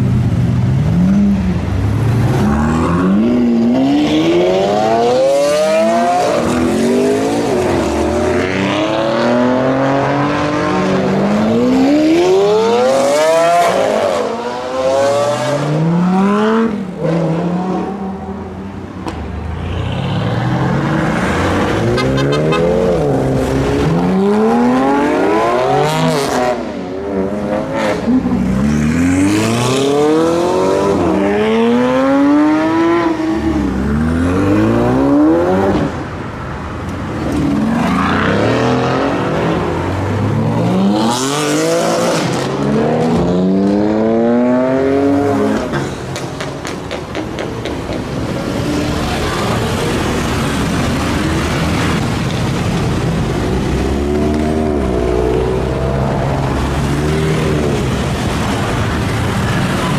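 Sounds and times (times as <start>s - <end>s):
car engines accelerating hard: 0.0s - 19.2s, 20.4s - 59.9s.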